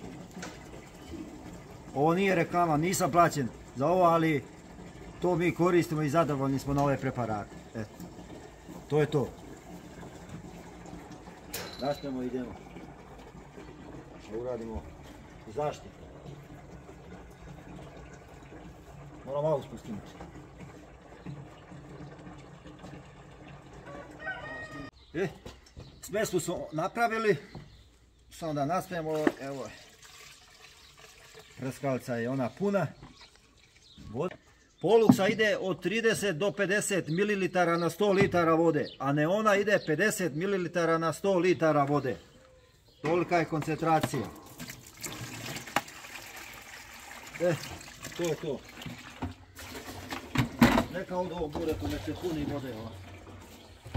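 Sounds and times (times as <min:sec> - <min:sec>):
liquid pouring into tank: 0:00.0 - 0:24.9, 0:29.0 - 0:34.1, 0:43.2 - 0:53.9
rooster crowing: 0:23.8 - 0:25.0.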